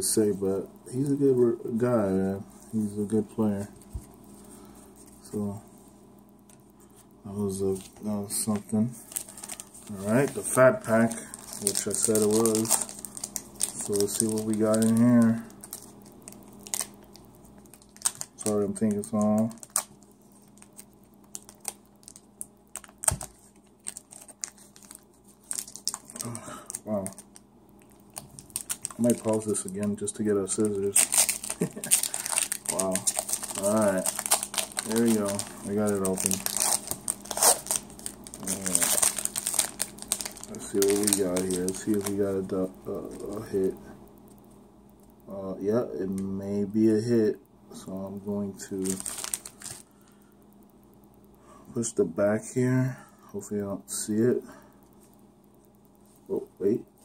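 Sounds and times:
plastic wrapper crinkling: 7.6s - 43.8s, 48.5s - 49.9s.

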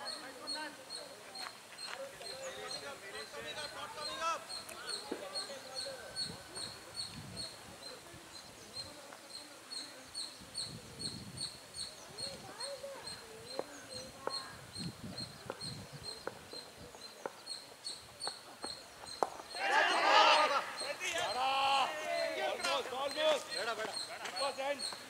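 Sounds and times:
voices shouting: 19.4s - 25.0s.

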